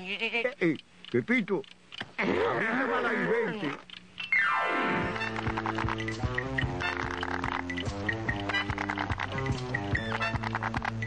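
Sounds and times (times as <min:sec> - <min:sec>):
music: 0:04.5 - 0:11.0.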